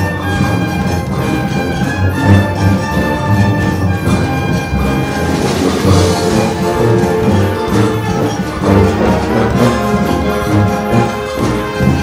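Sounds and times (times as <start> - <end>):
wind band playing: 0.0 - 12.0.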